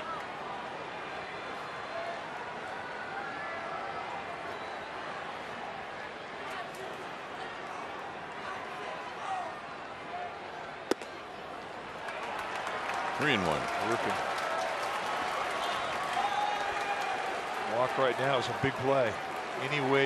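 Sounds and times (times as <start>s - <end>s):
ball smacking into mitt: 10.9s - 11.2s
people shouting from stands: 15.4s - 18.9s.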